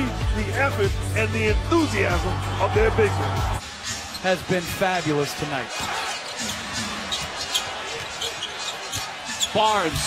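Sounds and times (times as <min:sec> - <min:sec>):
murmur of crowd: 0:01.8 - 0:10.0.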